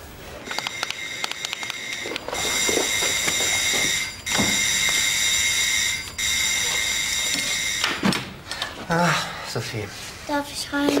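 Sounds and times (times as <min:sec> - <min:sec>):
doorbell ringing: 0:00.5 - 0:08.0.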